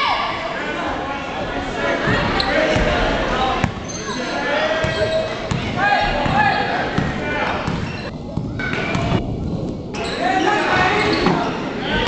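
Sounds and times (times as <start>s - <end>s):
players and spectators shouting: 0.0s - 7.6s.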